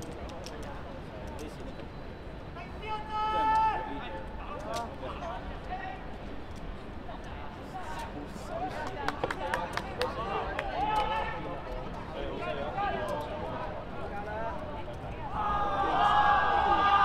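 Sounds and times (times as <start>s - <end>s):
voices shouting: 15.3s - 17.0s.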